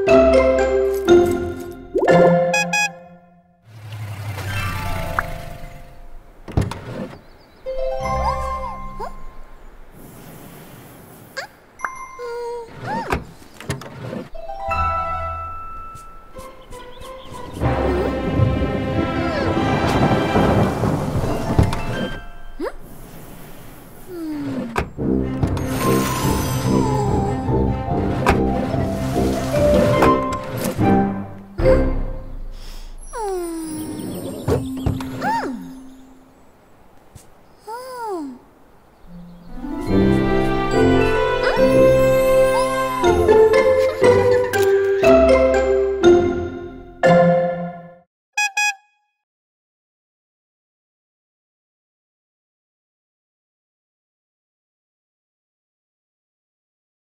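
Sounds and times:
background music: 0.0 - 3.4, 14.4 - 22.4, 24.9 - 32.6, 39.1 - 48.0
cartoon car horn honks: 2.1 - 3.4, 48.4 - 49.1
rain: 3.7 - 6.4, 17.7 - 24.5, 28.6 - 30.1
thunder clap: 18.2 - 22.2.

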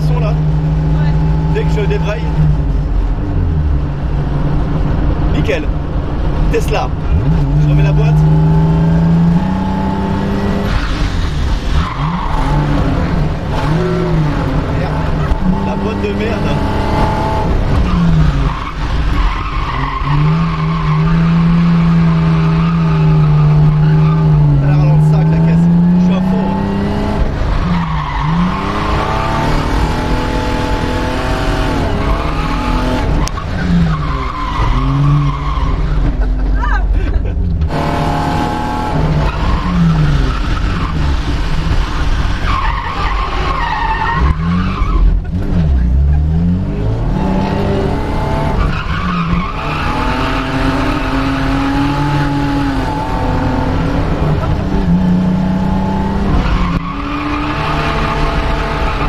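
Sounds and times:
car engine revving: 0.0 - 59.0
tyres skidding and squealing: 6.4 - 59.0.

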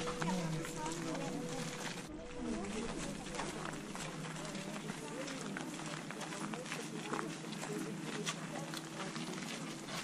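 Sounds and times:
faint chatter of people: 0.0 - 10.0
footsteps: 0.0 - 10.0.

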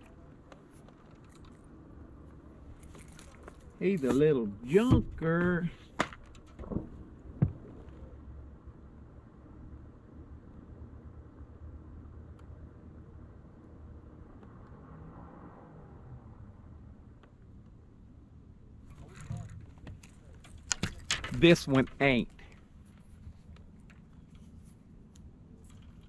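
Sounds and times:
low steady hum and rumble: 0.0 - 26.0.

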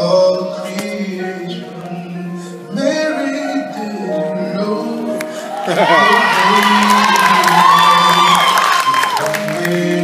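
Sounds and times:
male soul singer holding high note: 2.7 - 10.0
audience cheering and whooping: 5.4 - 10.0.

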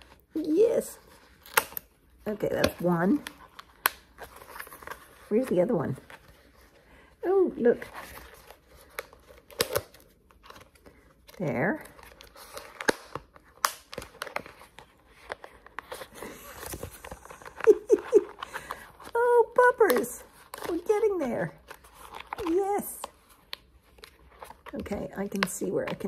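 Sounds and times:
plastic cone collar crinkling: 7.8 - 26.0.

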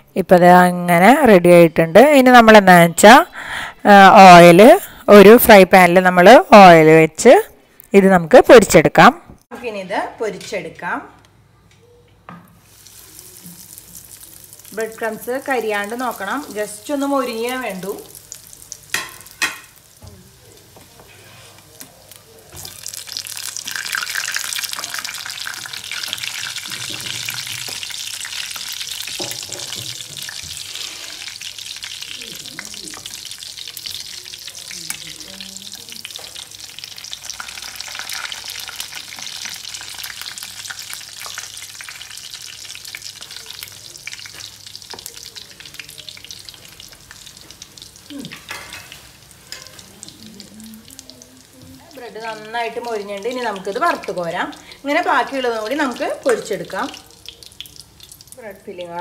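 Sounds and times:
bread sizzling in hot oil: 12.6 - 59.0.

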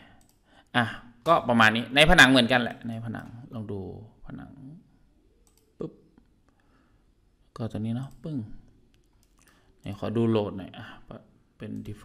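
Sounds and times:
computer mouse clicks: 0.2 - 0.4, 5.4 - 6.7, 8.9 - 9.8.

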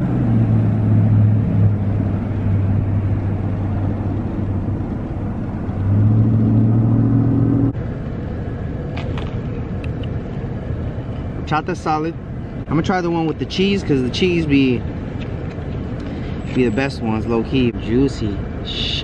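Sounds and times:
outdoor background rumble: 0.0 - 19.0.

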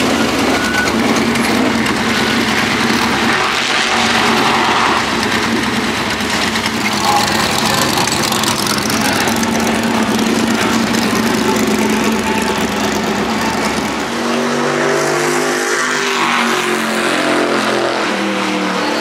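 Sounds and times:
race car engine idling: 0.0 - 14.4
loud race car engine: 0.0 - 19.0.

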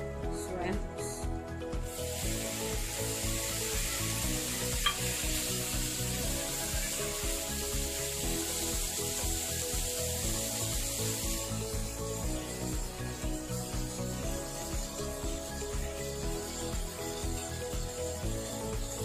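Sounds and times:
shrimp sizzling in a pan: 1.7 - 19.0.

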